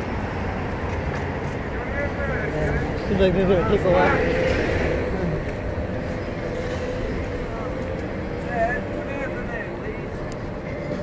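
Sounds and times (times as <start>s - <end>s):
bus engine and tyres rumbling: 0.0s - 11.0s.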